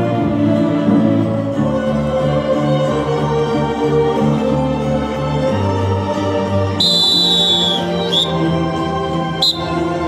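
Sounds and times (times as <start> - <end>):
orchestral music: 0.0 - 10.0
shrill whistle blast: 6.8 - 8.5, 9.4 - 9.8.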